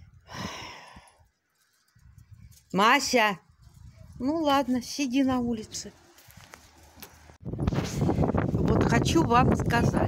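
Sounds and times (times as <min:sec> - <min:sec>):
wind buffeting microphone: 0:03.4 - 0:06.6, 0:07.2 - 0:10.0.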